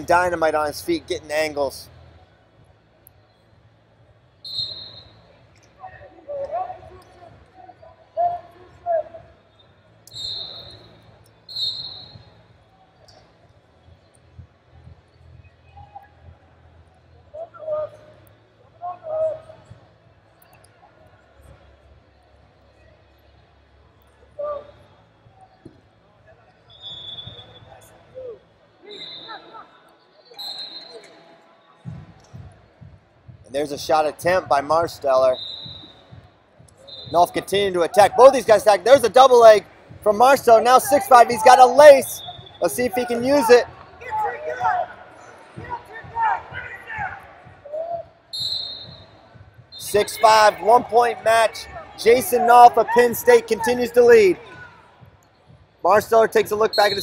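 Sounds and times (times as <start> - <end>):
high whistle tone: 4.4 - 5.2, 10.1 - 10.9, 11.5 - 12.2, 48.3 - 49.1
people shouting in echoing hall: 45.6 - 48.1
voices calling out: 49.8 - 54.4.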